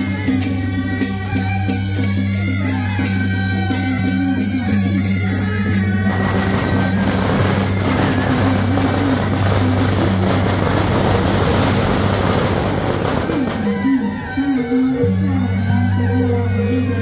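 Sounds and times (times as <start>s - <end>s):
loud amplified music: 0.0s - 17.0s
firecrackers crackling: 5.7s - 15.0s.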